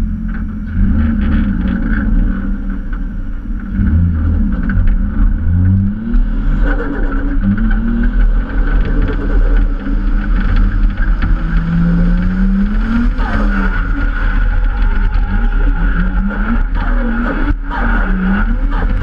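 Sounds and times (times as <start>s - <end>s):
car engine accelerating hard: 0.0s - 19.0s
low road rumble: 0.0s - 19.0s.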